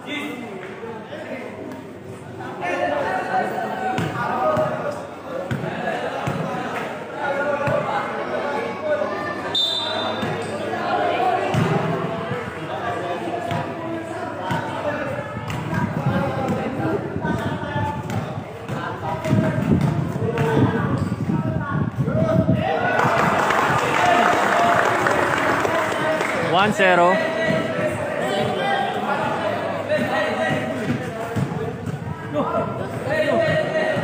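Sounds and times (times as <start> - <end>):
people talking and calling out: 0.0 - 34.0.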